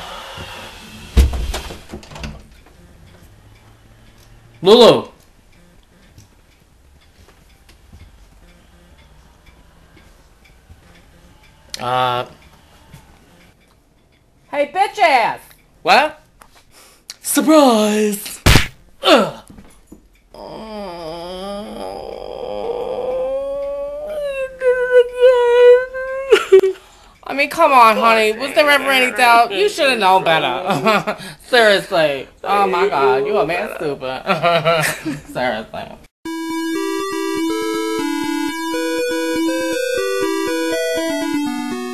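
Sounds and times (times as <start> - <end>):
faint irregular ticks: 2.5 - 14.5, 20.1 - 27.7
man wailing howl: 28.0 - 29.5
man yelping: 28.0 - 29.5
person shouting: 28.0 - 29.5.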